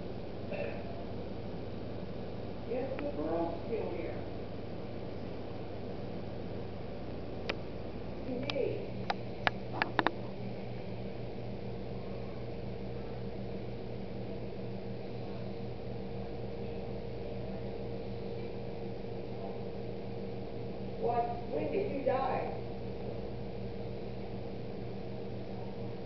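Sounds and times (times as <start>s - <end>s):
low mechanical hum: 0.0s - 26.0s.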